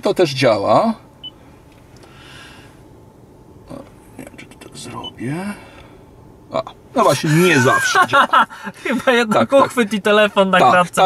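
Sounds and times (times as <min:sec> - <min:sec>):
soft hiss: 0:00.8 - 0:09.1.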